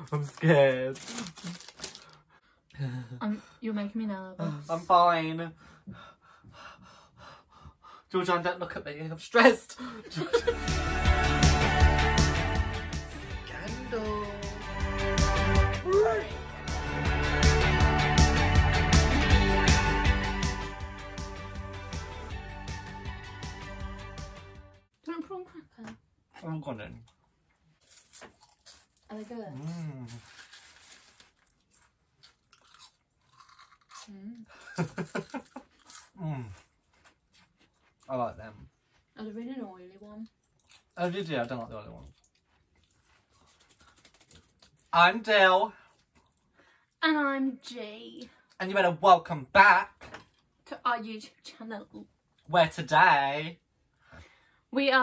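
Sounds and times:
person chewing crunchy snack: 27.8 - 38.1, 40.3 - 41.0, 42.0 - 44.9.

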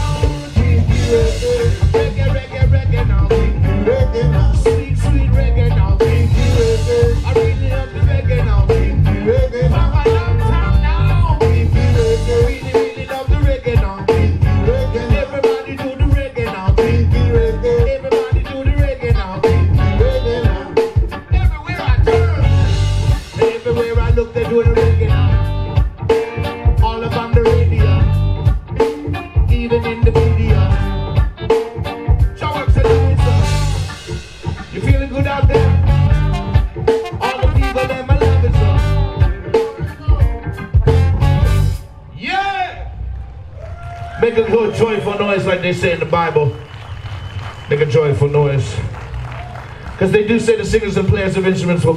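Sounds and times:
trombone: 0.0 - 15.3, 19.4 - 20.8, 30.1 - 31.3, 32.5 - 42.1
vocals: 0.0 - 41.1, 41.8 - 43.1, 44.0 - 46.7, 47.7 - 48.9, 49.9 - 51.9
live reggae band: 0.0 - 51.9.

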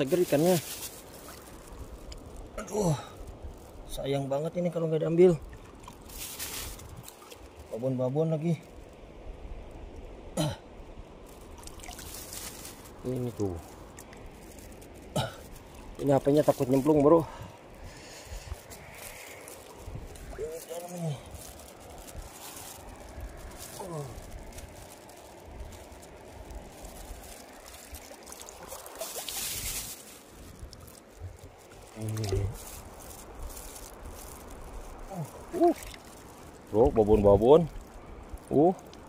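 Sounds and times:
stream water trickling: 0.0 - 39.0
person grunting and murmuring: 2.6 - 3.2, 20.4 - 21.3, 23.8 - 24.2
water splash: 11.5 - 12.9, 27.2 - 30.2.

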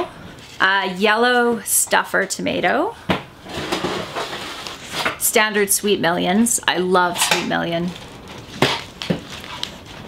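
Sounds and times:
paper packets rustling: 7.8 - 10.0.

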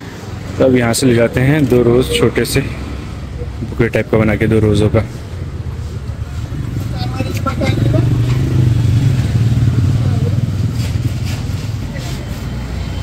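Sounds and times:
vehicle engine passing: 0.0 - 13.0
faint background voices: 9.5 - 13.0.

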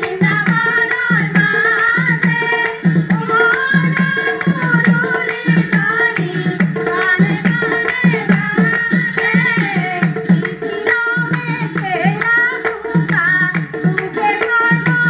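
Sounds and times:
barrel drum beating: 0.0 - 15.0
small hand cymbals: 0.0 - 15.0
women singing devotional song: 0.0 - 15.0.

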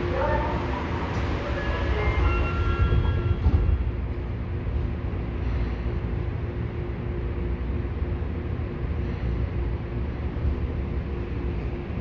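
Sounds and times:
subway doors sliding shut: 0.0 - 4.8
train rumble and hum: 0.0 - 12.0.

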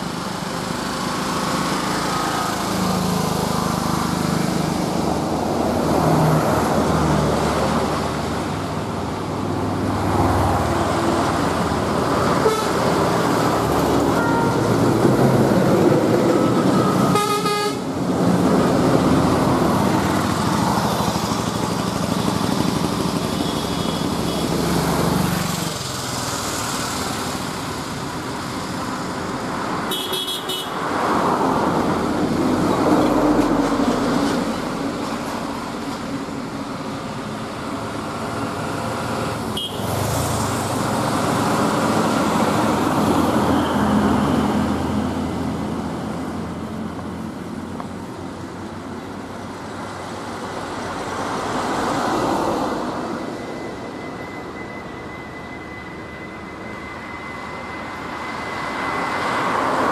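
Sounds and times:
buses and trucks passing: 0.0 - 59.9
vehicle horns: 12.4 - 12.8, 14.1 - 14.7, 16.8 - 17.9, 23.3 - 24.5, 29.9 - 30.8, 39.6 - 39.9.

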